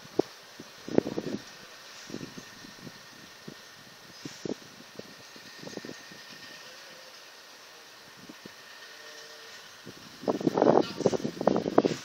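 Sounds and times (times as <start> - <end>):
distant heavy vehicle engines rumbling: 0.2 - 12.0.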